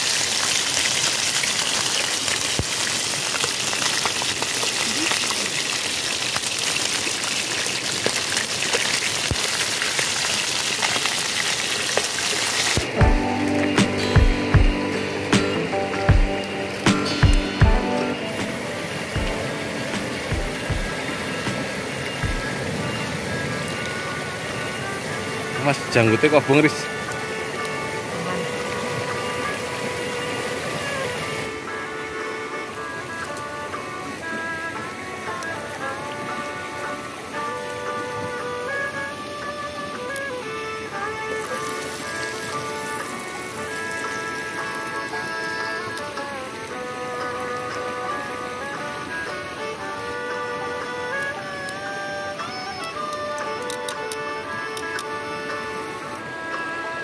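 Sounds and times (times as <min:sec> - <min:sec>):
fish sizzling in oil: 0:00.0 - 0:13.0
music with beat and melody: 0:12.8 - 0:22.6.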